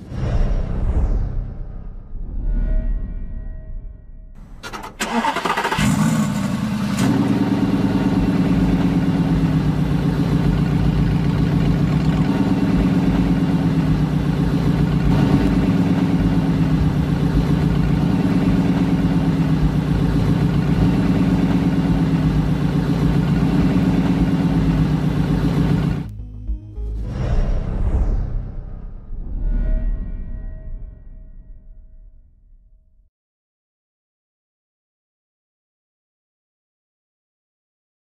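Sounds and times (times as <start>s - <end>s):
sports car engine idling: 5.9s - 26.2s.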